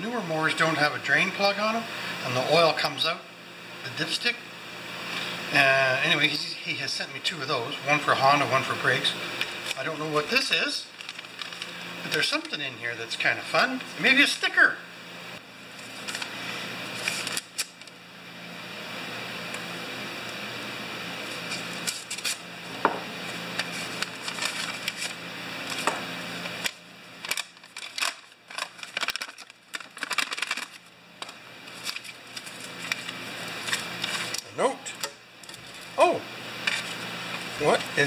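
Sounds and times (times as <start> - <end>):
paper rustling and crinkling: 10.9 - 11.8, 15.8 - 16.3, 16.9 - 17.9, 23.5 - 26.0, 26.6 - 34.4
plastic packet handled: 10.9 - 12.2, 23.6 - 26.0, 26.6 - 34.4.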